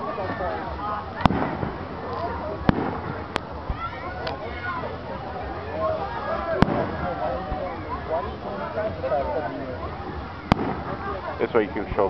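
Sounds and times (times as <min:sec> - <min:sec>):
firework shells bursting: 0:10.5 - 0:10.9.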